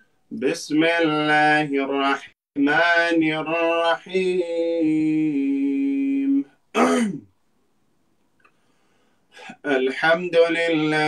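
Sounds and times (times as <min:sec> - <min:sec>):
man chanting recitation: 0:00.3 - 0:06.6, 0:09.4 - 0:11.0.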